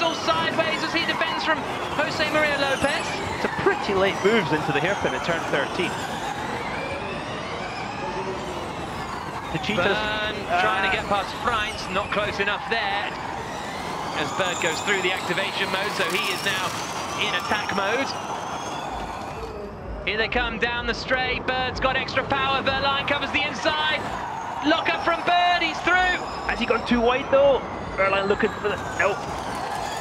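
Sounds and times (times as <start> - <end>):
electric race car whine: 0.0 - 20.2, 22.0 - 30.0
tyre and road noise: 0.0 - 20.4, 21.5 - 30.0.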